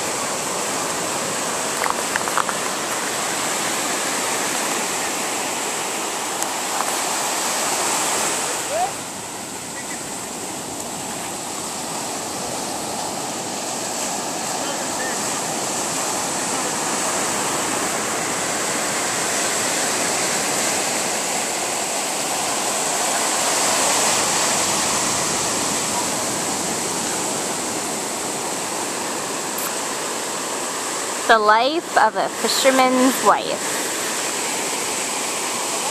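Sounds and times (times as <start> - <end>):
ocean surf breaking: 0.0 - 35.9.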